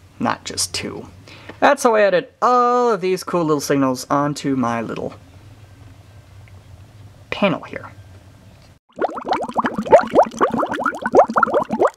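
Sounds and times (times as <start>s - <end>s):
bubbling blips: 8.9s - 11.9s.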